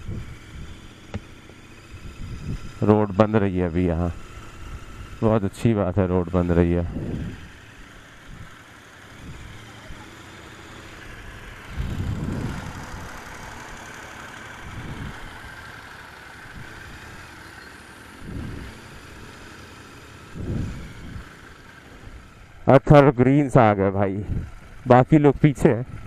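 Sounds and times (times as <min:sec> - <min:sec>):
motorcycle engine running: 0:00.0 - 0:26.0
traffic engines: 0:00.0 - 0:26.0.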